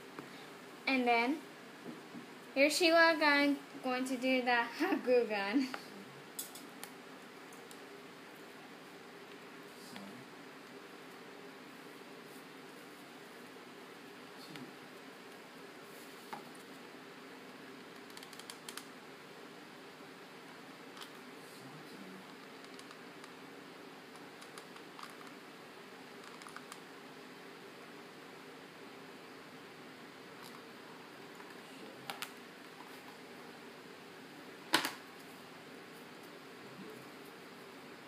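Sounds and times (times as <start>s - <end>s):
faint room hum: 0.0s - 38.0s.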